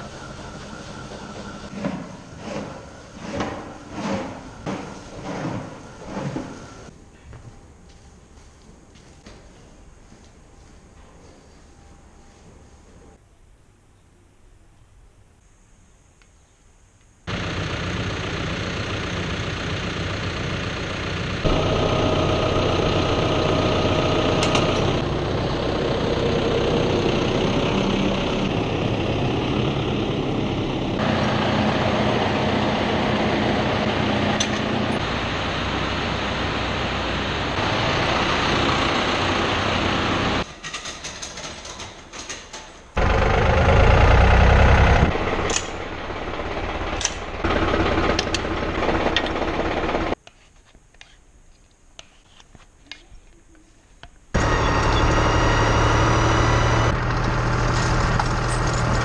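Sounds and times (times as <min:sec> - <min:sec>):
tractor diesel engine idling: 0:17.3 - 0:40.4, 0:43.0 - 0:50.2, 0:54.4 - 0:59.0.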